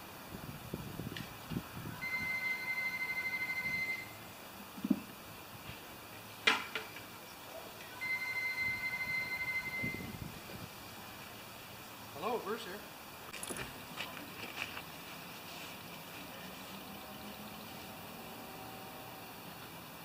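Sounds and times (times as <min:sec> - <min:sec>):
telephone ringing: 0:02.0 - 0:04.2, 0:08.0 - 0:10.1.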